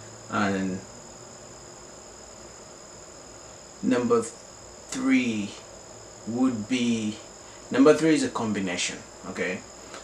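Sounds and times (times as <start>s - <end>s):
high-pitched insect drone: 0.0s - 10.0s
man speaking: 0.3s - 0.8s, 3.8s - 5.6s, 6.3s - 9.7s.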